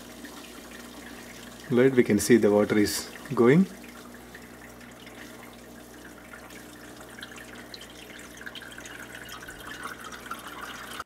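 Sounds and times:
pump humming: 0:00.0 - 0:11.0
water trickling and dripping: 0:00.0 - 0:11.0.

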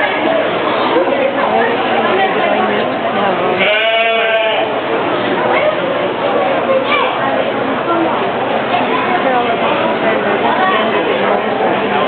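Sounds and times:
sheep bleating: 0:03.6 - 0:04.7.

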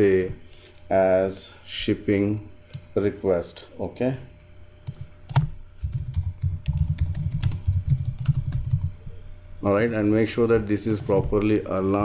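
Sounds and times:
computer keyboard typing: 0:04.9 - 0:08.9, 0:10.8 - 0:11.4.

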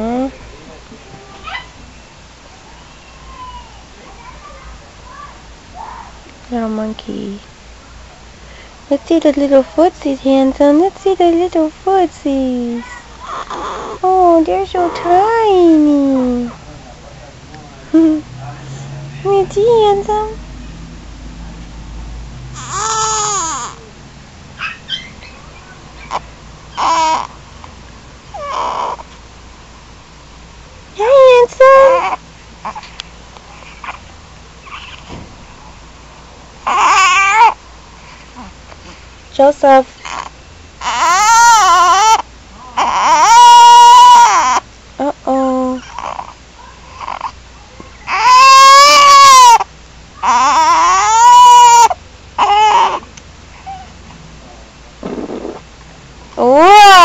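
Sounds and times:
baby fussing and crying: 0:12.8 - 0:16.6, 0:22.5 - 0:23.9, 0:26.0 - 0:27.4, 0:28.3 - 0:29.2, 0:31.0 - 0:35.1, 0:36.6 - 0:37.6, 0:40.0 - 0:44.7, 0:45.7 - 0:47.4, 0:48.0 - 0:54.0, 0:56.4 - 0:57.0.

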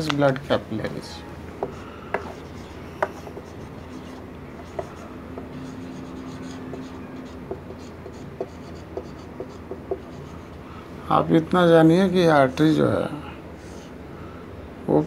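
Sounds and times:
marker rubbing on whiteboard: 0:01.6 - 0:10.6
marker tip tapping: 0:03.0 - 0:03.4.

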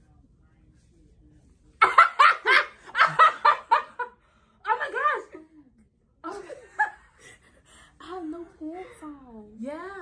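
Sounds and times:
women laughing loudly: 0:01.8 - 0:04.1.

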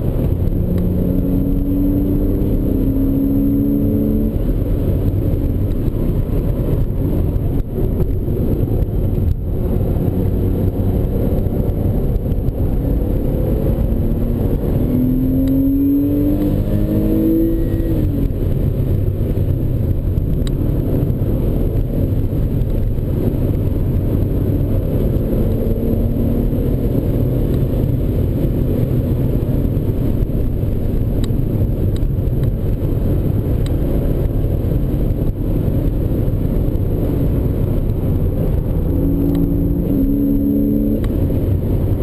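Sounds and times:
car engine under load: 0:00.0 - 0:42.0
road and wind noise: 0:00.0 - 0:42.0.

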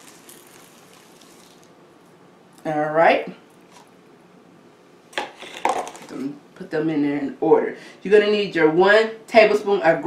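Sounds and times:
oats pouring rustle: 0:00.0 - 0:01.7.

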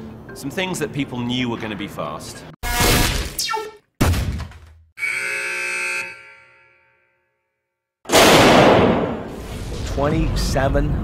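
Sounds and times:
sustained multi-pitch tone: 0:05.0 - 0:07.2.

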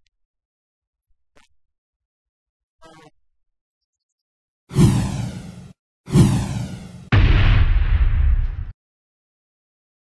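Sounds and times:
downward swooshes: 0:04.7 - 0:07.2
heavy rumbling hit: 0:06.3 - 0:08.7.

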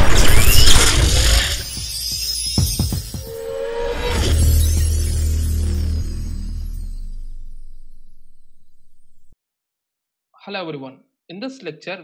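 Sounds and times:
glassy shattering shimmer: 0:00.0 - 0:08.6.

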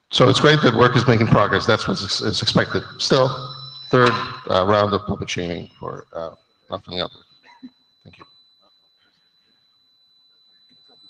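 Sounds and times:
man speaking over pa: 0:00.1 - 0:03.4, 0:04.0 - 0:07.1
faint high-pitched tone: 0:00.1 - 0:11.0.

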